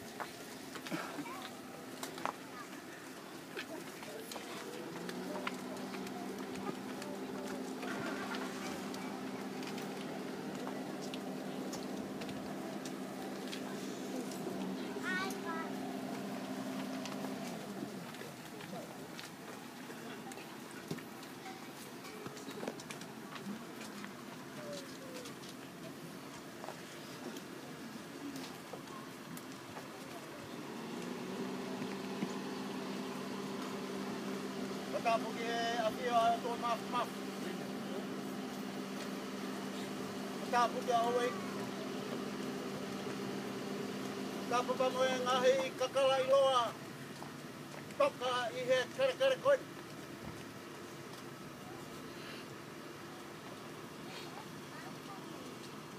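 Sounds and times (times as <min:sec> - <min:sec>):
engine humming: 0:00.0 - 0:55.9.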